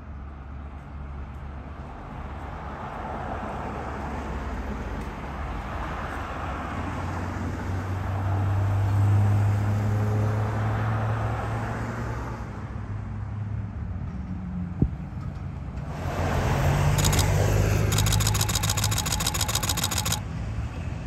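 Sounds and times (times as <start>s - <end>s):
rapid ticks: 17.0s - 20.2s
sharp click: 17.0s - 20.2s
vehicle engine humming: 17.0s - 20.2s.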